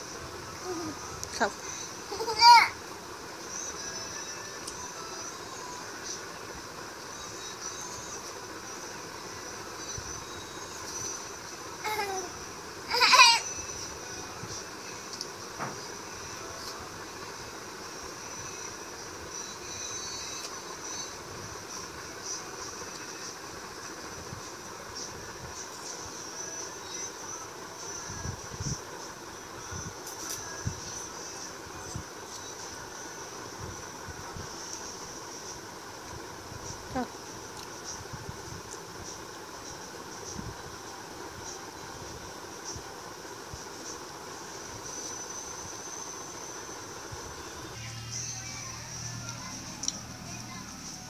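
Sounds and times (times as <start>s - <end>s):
insects droning: 0.0s - 51.0s
toddler vocal sounds: 2.1s - 2.8s, 11.8s - 13.5s.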